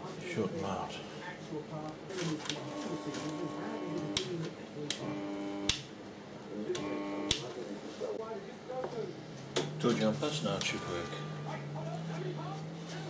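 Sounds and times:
switch click: 5.7s - 5.9s, 6.8s - 7.5s
transformer humming: 9.3s - 13.0s.

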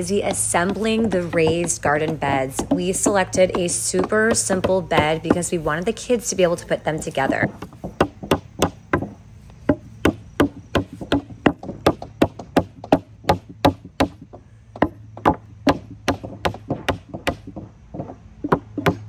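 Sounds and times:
hammer knocking on wood: 0.2s - 5.8s, 7.2s - 19.0s.

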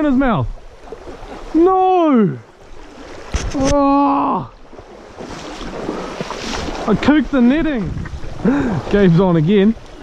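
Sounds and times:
stream water rushing and splashing: 0.0s - 10.0s
wind buffeting microphone: 4.7s - 10.0s.

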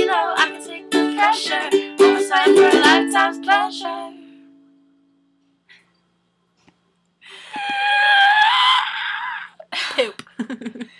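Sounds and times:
woman's high-pitched squeal: 7.4s - 9.6s.

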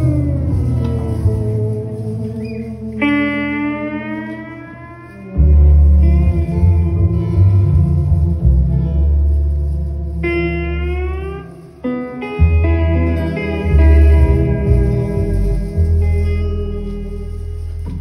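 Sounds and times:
heavy bass and drums: 0.0s - 3.8s, 5.3s - 11.8s, 12.4s - 18.0s
electric guitar: 0.0s - 18.0s
gliding sustained lead notes: 0.0s - 18.0s.

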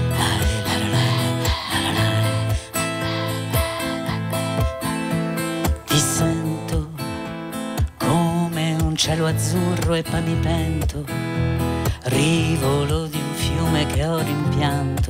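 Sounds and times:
acoustic guitar strumming chords: 0.0s - 15.0s.

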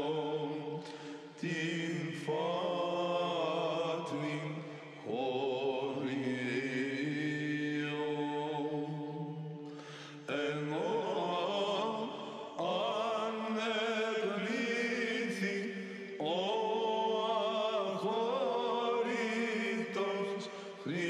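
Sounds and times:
choir chanting: 0.0s - 9.6s, 10.2s - 21.0s.

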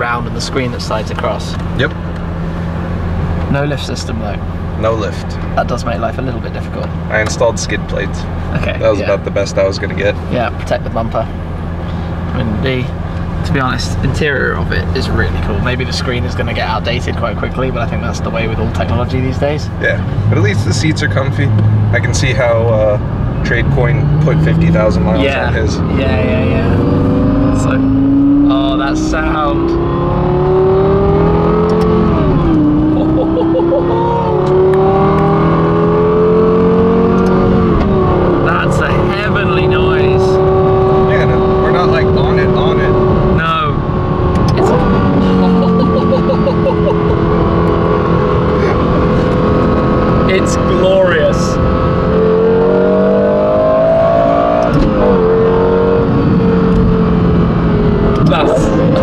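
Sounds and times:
car engine accelerating through gears: 0.0s - 59.0s.

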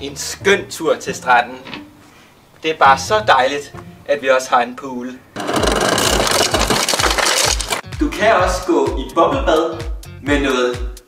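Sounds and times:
ice clattering into glass: 5.4s - 7.8s
background music beat: 7.8s - 11.0s.

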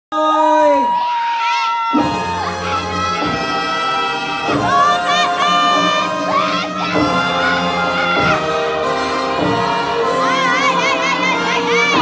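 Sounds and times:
audience cheering and shouting: 0.2s - 12.0s.

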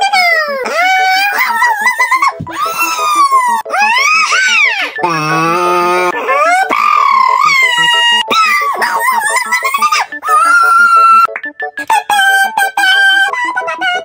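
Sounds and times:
man wailing and whimpering: 0.0s - 11.2s
background music with beat: 2.2s - 13.8s
man moaning: 5.0s - 6.8s.

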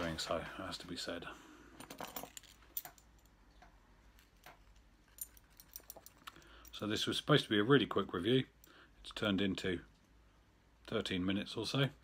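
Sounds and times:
man talking: 0.0s - 1.4s, 6.7s - 9.9s, 10.8s - 12.0s.

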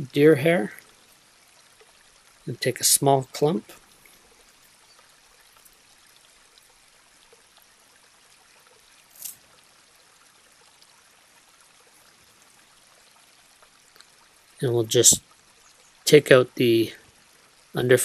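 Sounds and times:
faint steady hiss: 0.0s - 18.0s.

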